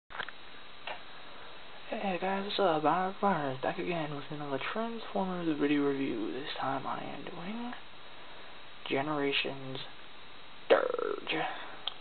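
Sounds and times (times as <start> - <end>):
recording hiss: 0.1 - 12.0.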